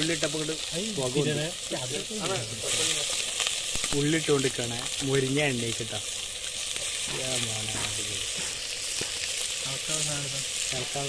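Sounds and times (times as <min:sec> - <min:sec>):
onions sizzling in hot fat: 0:00.0 - 0:11.0.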